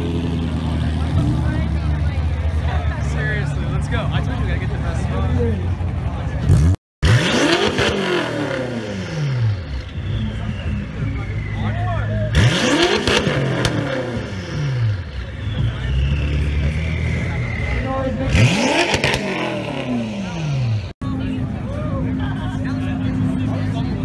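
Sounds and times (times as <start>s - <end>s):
car engine revving: 0.0s - 21.4s.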